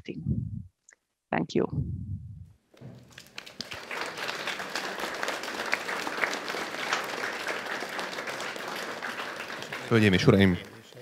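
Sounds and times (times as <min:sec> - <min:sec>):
audience applauding: 0:02.8 - 0:11.0.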